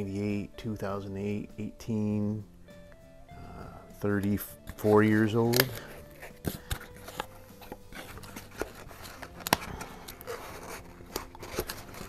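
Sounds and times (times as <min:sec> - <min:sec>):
cardboard box clicks and rustles: 0:05.5 - 0:12.0.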